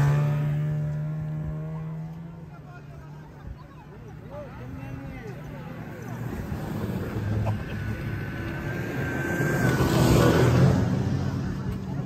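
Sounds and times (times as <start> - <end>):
snowmobile engine running: 4.6 - 12.0.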